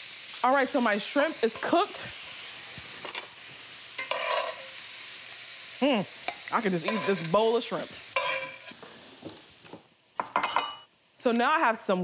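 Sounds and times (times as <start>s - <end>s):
kitchenware clinking: 4.0s - 4.7s, 6.3s - 7.4s, 8.2s - 8.7s, 10.2s - 10.9s.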